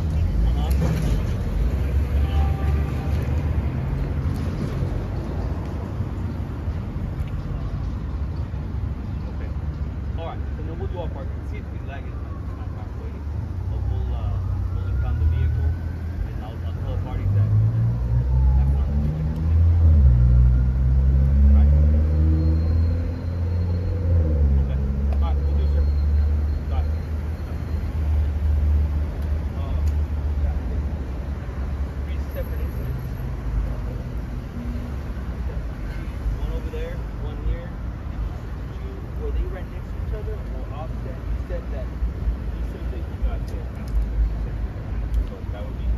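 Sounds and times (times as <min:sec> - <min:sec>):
low traffic rumble: 0:00.0 - 0:45.9
vehicle engine revving: 0:17.2 - 0:25.1.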